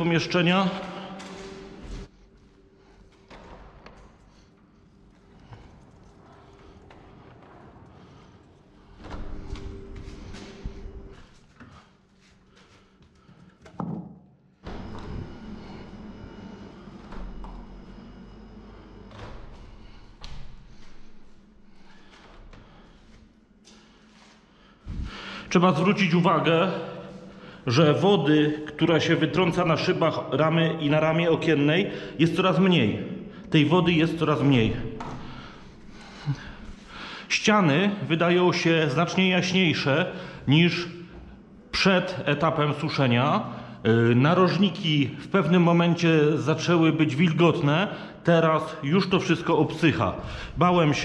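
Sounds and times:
low steady hum: 0.0s - 13.8s, 14.5s - 51.0s
footsteps: 0.6s - 13.8s.

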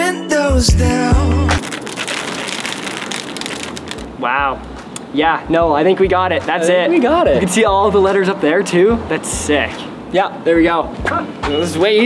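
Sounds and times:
rain pattering on hard surfaces: 1.6s - 4.2s.

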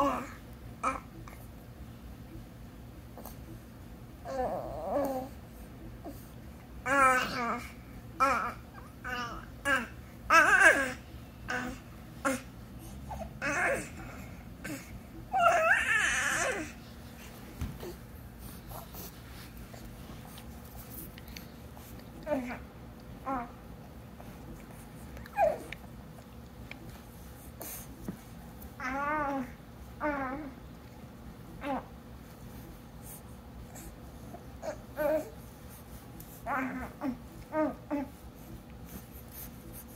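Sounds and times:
baby whining: 4.2s - 5.4s, 6.9s - 16.8s, 25.2s - 25.8s, 28.8s - 30.6s, 36.4s - 38.2s.

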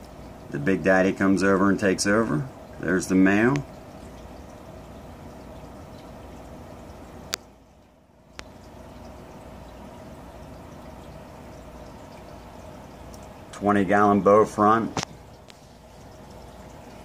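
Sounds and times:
aquarium water trickling: 0.0s - 17.0s.

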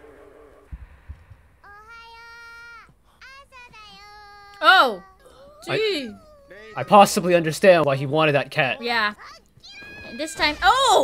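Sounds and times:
child calling out: 1.6s - 7.1s.

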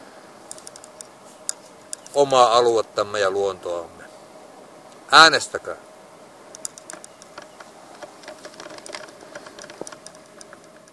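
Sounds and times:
faint steady hum: 0.0s - 10.9s
light clicks and ticks: 0.5s - 2.2s, 6.5s - 10.9s.

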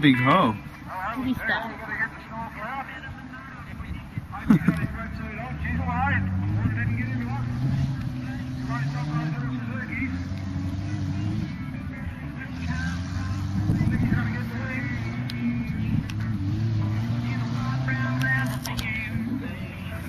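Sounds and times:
faint voices talking: 0.0s - 20.0s
car engine revving: 4.5s - 20.0s.

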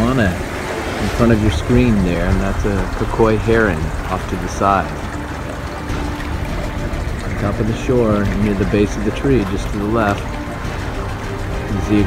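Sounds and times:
light rain hiss: 0.0s - 12.0s
low rumble: 0.0s - 12.0s.

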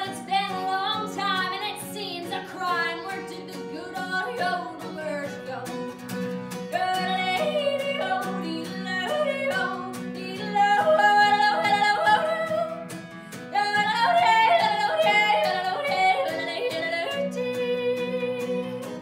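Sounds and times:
strummed acoustic guitar: 0.0s - 19.0s.

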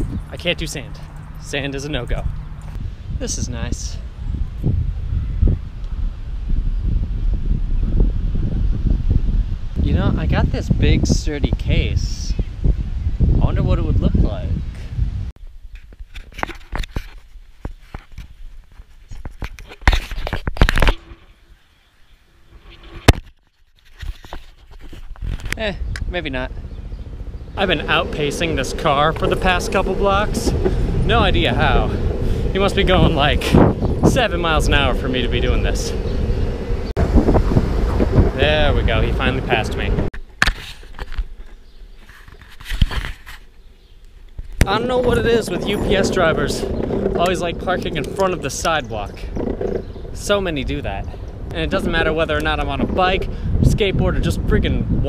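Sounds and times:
longboard wheels knocking on joints: 27.6s - 40.1s, 44.6s - 51.0s.

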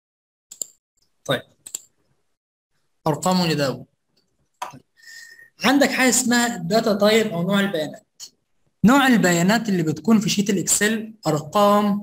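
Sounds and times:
computer mouse click: 0.5s - 0.8s, 1.6s - 1.9s.

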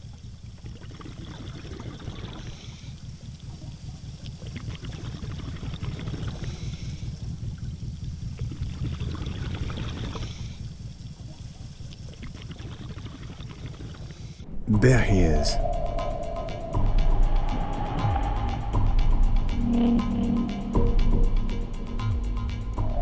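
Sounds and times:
underwater rumble with bubble crackle: 0.0s - 14.4s
exhaled regulator bubbles hissing: 0.6s - 3.4s, 4.4s - 11.1s.

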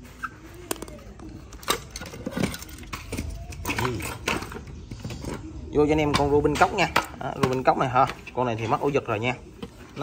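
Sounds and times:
metallic clinks and knocks: 0.6s - 5.5s.

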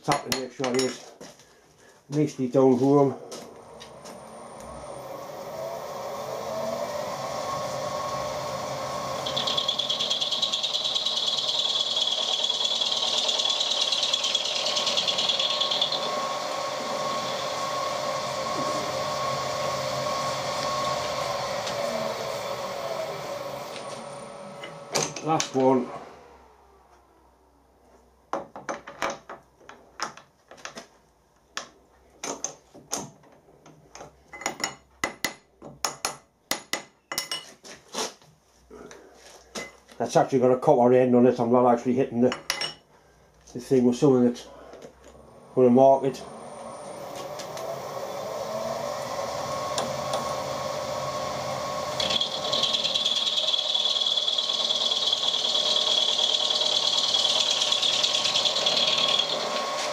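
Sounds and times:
milling machine running: 2.8s - 26.6s, 44.8s - 59.9s
high-pitched metal cutting: 3.0s - 26.0s, 45.5s - 59.9s.

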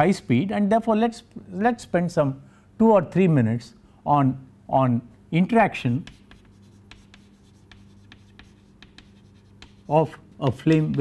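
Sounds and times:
chalk tapping and scratching: 5.9s - 11.0s.

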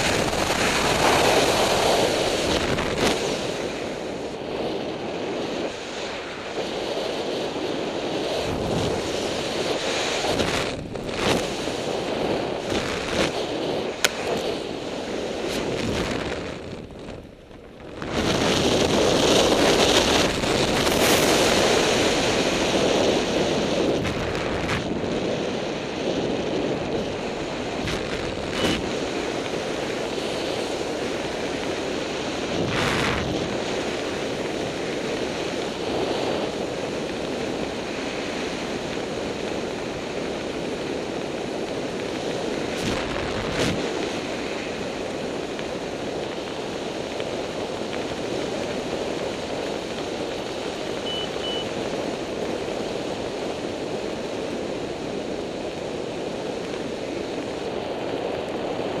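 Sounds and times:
wind rushing over microphone: 0.0s - 59.0s.

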